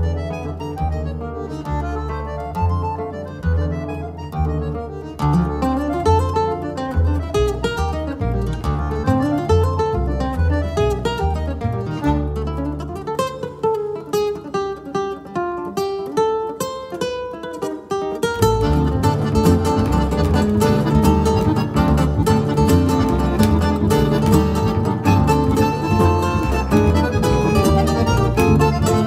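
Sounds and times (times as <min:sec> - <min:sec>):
deep double bass notes: 0:00.0 - 0:12.9, 0:18.5 - 0:29.0
plucked guitar runs: 0:00.0 - 0:15.4, 0:17.4 - 0:29.0.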